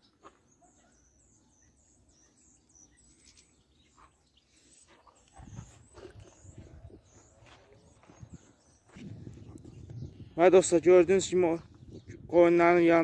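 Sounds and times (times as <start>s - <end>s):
faint high bird chirps: 0.0s - 10.4s.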